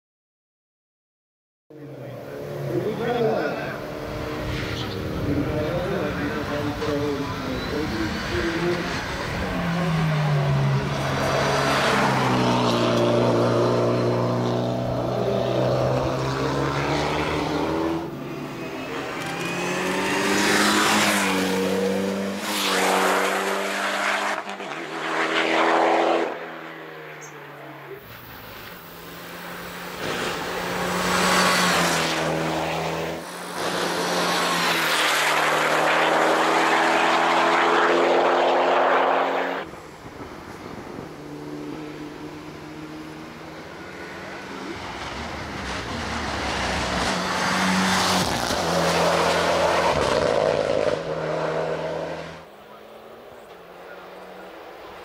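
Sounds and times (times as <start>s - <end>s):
race car engines revving: 1.7s - 55.0s.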